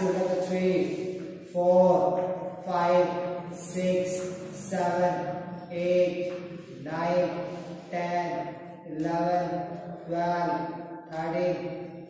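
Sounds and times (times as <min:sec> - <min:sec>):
man chanting counts: 0:00.0 - 0:12.0.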